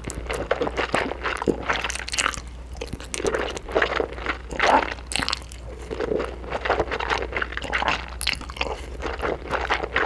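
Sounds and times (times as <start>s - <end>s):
chewing and slurping noodles: 0.0s - 10.0s.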